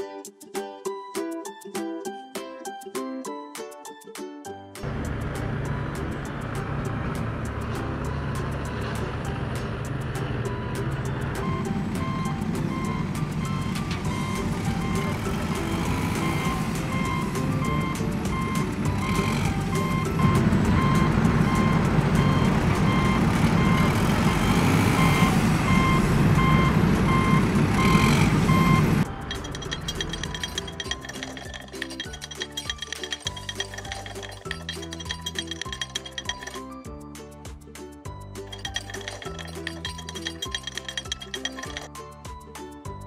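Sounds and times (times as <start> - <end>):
truck engine running: 4.8 - 36.6, 38.4 - 41.9
reversing alarm beeping: 10.4 - 36.6.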